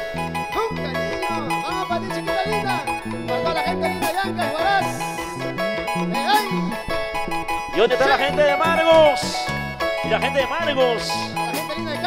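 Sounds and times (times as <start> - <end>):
latin dance band playing: 0.0 - 12.0.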